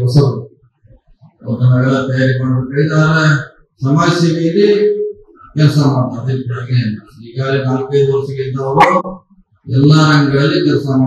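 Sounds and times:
man speaking into a microphone: 0.0s - 0.5s, 1.4s - 9.0s, 9.7s - 11.0s.

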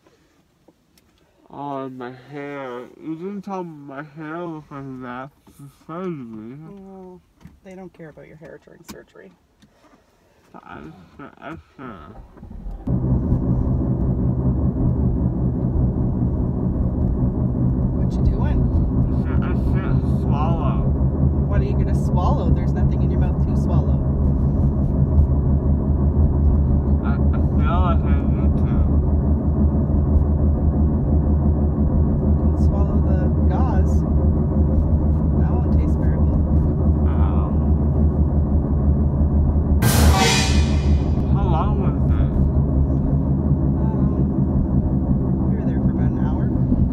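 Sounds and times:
car engine and road noise: 4.9s - 46.9s.

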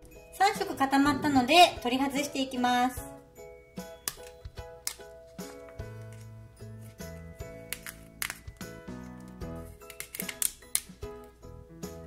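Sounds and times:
background music: 0.0s - 12.0s
plastic sheet clicks and crackles: 7.7s - 8.5s, 9.9s - 10.9s.

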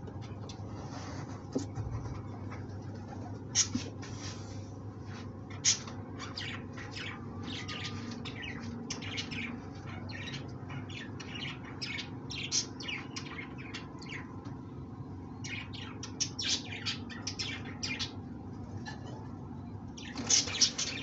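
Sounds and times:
steady low hum: 0.0s - 21.0s
small birds chirping: 3.2s - 21.0s.

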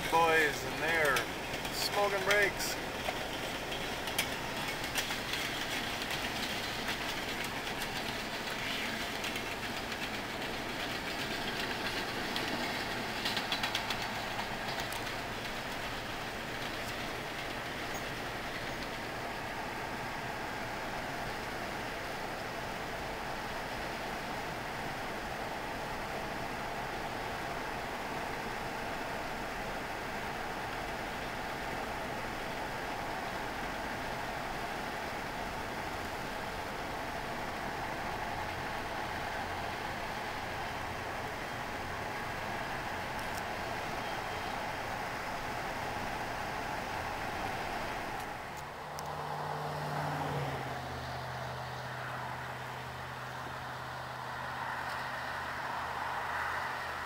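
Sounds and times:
freight train rolling: 0.0s - 57.0s.

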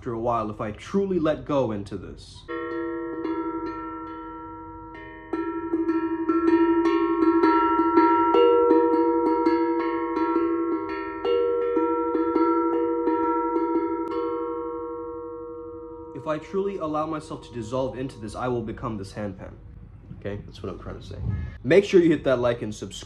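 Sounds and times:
handpan struck with mallets: 2.4s - 19.0s.

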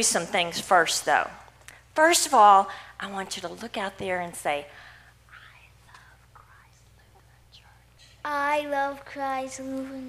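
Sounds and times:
low steady hum: 0.0s - 10.0s
woman whispering: 5.3s - 8.0s.

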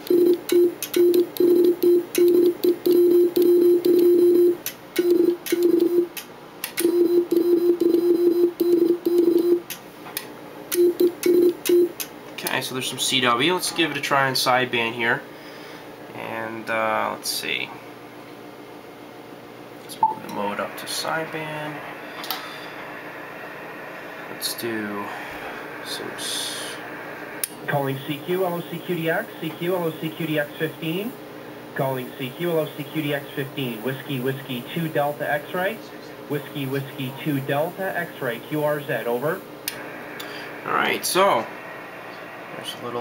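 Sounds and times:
morse code tone: 0.0s - 6.1s, 6.8s - 9.6s, 10.8s - 12.0s
cooling fan whooshing: 9.7s - 43.0s.

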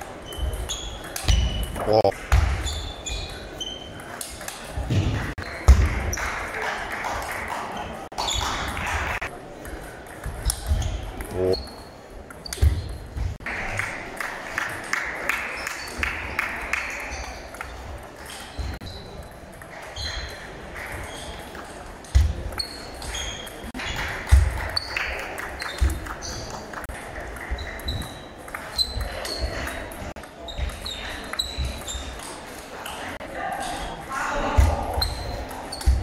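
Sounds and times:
background chatter: 0.0s - 36.0s
table tennis balls clicking: 19.2s - 33.0s.

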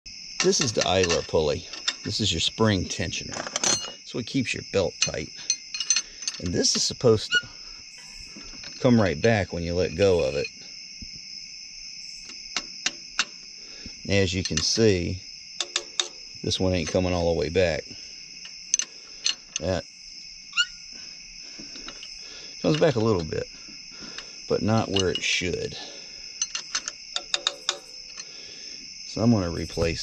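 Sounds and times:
crickets chirring: 0.1s - 30.0s
wrench clicking on metal tensioner: 26.4s - 28.3s.

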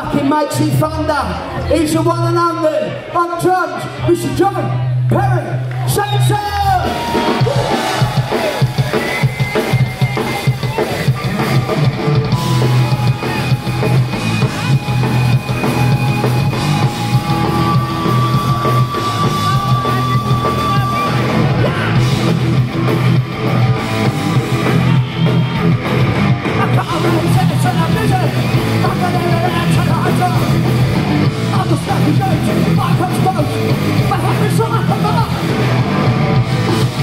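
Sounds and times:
punk rock band playing: 5.8s - 37.0s
long held guitar notes: 11.2s - 31.6s.

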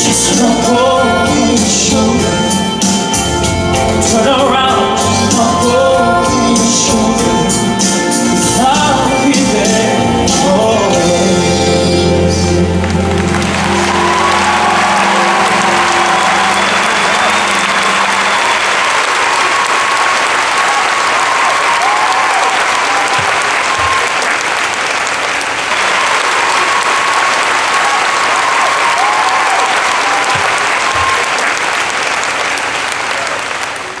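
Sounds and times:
large audience applauding: 12.3s - 34.0s.

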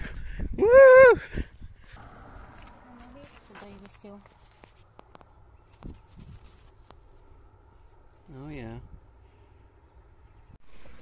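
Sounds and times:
low steady rumble: 0.4s - 11.0s.

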